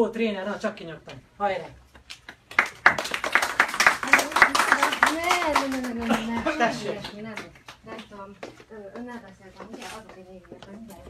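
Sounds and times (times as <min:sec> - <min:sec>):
audience clapping: 0:02.0 - 0:08.1.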